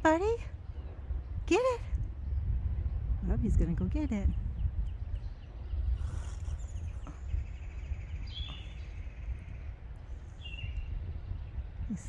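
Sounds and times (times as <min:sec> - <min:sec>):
wind rumble on microphone: 0:00.0 - 0:12.0
bird chirps: 0:04.3 - 0:11.6.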